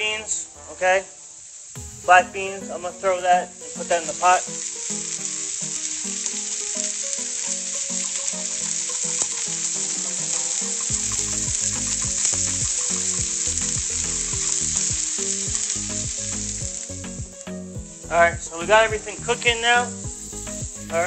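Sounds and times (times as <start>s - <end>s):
food sizzling in frying pans: 0.0s - 21.0s
low thumps: 10.9s - 21.0s.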